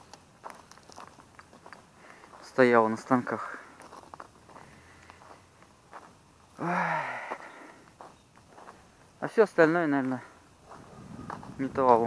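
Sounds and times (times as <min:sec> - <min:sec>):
footsteps crunching on rubble: 0:00.0 - 0:06.6, 0:07.2 - 0:12.0
man exclaiming: 0:06.6 - 0:07.4.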